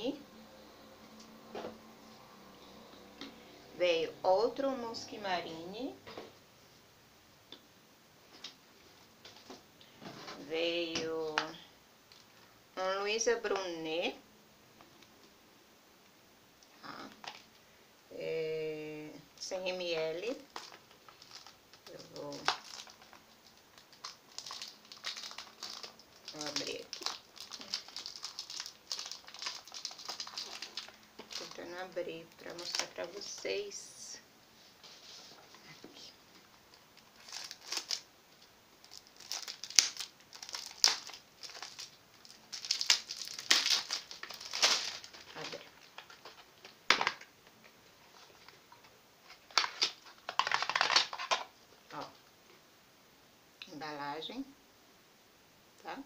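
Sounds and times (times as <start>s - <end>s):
packaging crinkling: 17.1s - 17.6s, 20.2s - 33.6s, 36.4s - 47.3s, 48.0s - 51.6s.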